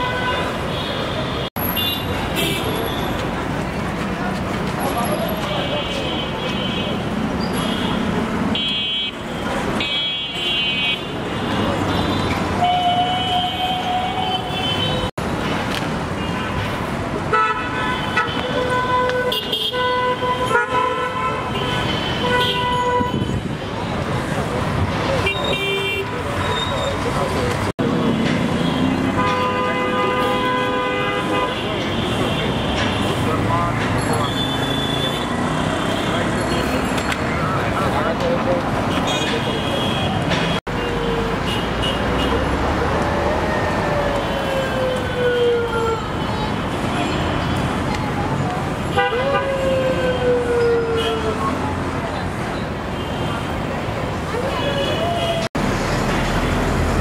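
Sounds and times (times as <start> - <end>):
passing vehicles: 0.0 - 57.0
car and bus horns honking: 16.2 - 23.5, 28.4 - 33.4.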